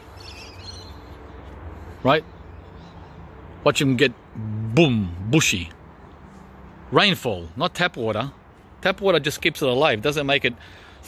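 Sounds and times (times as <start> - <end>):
bird chirping: 0.0 - 3.7.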